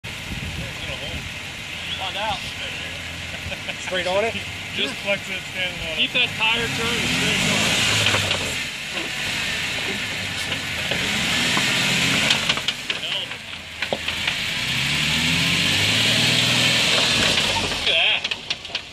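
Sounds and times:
car engine at low revs: 0.0 - 18.9
gravel crunching and clicks: 6.4 - 9.2, 9.8 - 15.1, 16.4 - 18.9.

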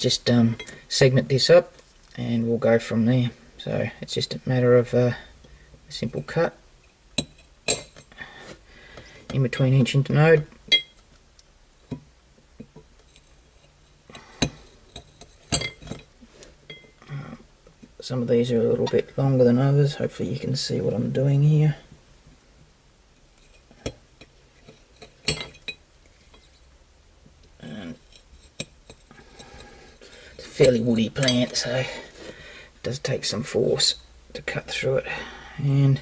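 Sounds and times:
metal blade clinking on ceramic plate: 14.9 - 16.1.

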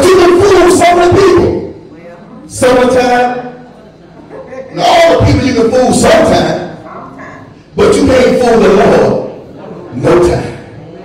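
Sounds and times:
man preaching through a microphone: 0.0 - 1.8, 2.5 - 3.6, 4.7 - 10.8.

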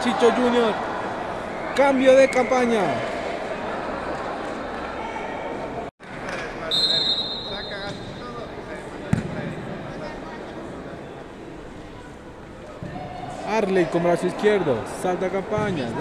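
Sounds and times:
murmur of voices in a hall: 0.0 - 16.0
short high whistle: 6.7 - 7.9
ball thud on wooden court: 9.1 - 9.4.

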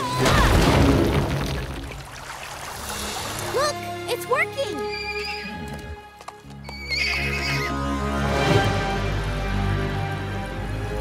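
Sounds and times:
background music: 2.4 - 11.0
foal whinnying: 4.8 - 6.0, 6.6 - 7.8.

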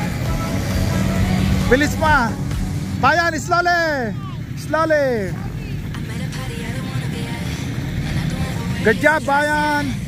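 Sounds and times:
quad bike engine running: 0.0 - 10.0
person shouting: 4.0 - 4.5.

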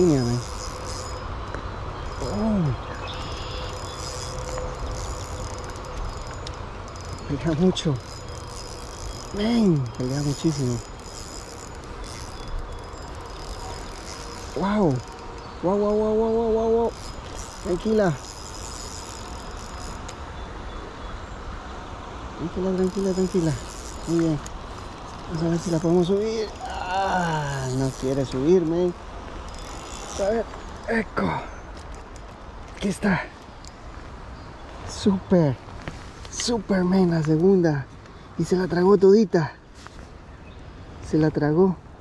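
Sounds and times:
fishing reel whirring and clicking: 0.0 - 20.5, 22.7 - 30.9.

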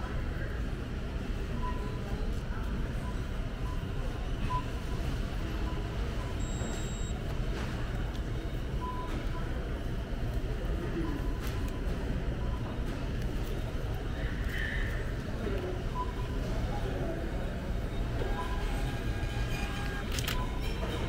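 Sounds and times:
indistinct distant voices: 0.0 - 21.0
short electronic beeps: 5.6 - 7.2.

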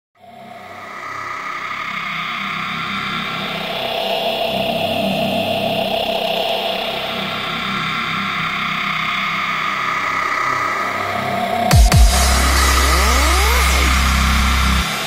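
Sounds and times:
noisy synthesizer drone: 11.7 - 14.9
choppy low bass: 11.8 - 14.9.

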